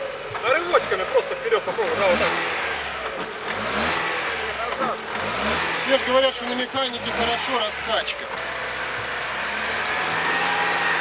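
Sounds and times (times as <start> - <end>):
car engine revving: 0.0 - 11.0
tyres working in mud: 0.0 - 11.0.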